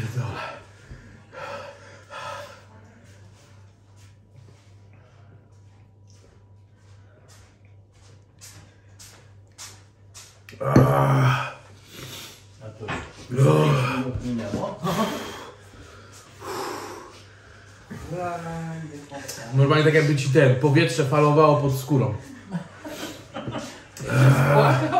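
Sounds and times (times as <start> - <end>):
man panting: 0.0 - 2.7, 14.8 - 18.4, 24.0 - 24.9
man making pained vocal sounds: 10.5 - 11.6.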